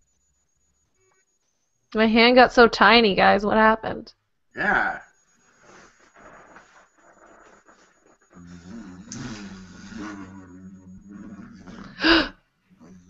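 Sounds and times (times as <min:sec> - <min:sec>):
faint rustling: 0:05.2 - 0:08.4
toy lightsaber humming: 0:08.5 - 0:12.1.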